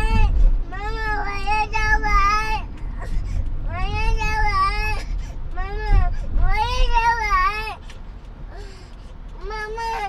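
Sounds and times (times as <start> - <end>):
moving car rumble: 0.0 - 10.0.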